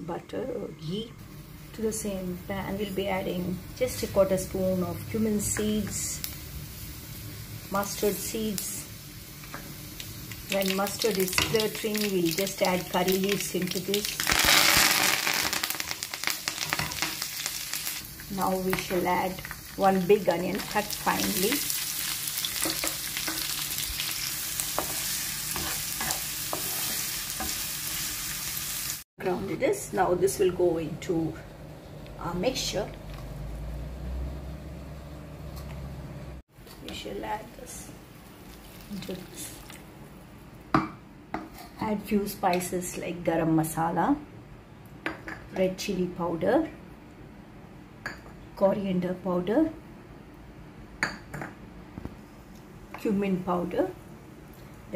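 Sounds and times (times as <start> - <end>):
leaves sizzling in hot oil: 1.2 - 29.1, 37.3 - 39.9
seeds crackling and popping: 9.9 - 19.8.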